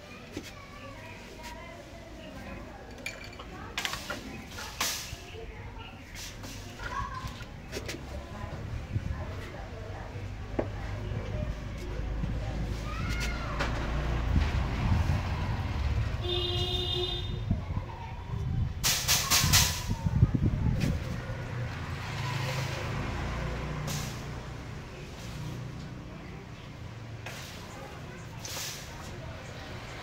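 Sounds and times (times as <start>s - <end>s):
vehicle engine rumble: 0.0s - 30.0s.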